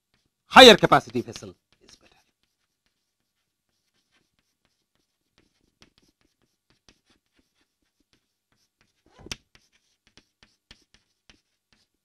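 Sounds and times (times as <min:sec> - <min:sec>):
chalk writing on chalkboard: 0:00.0 - 0:12.0.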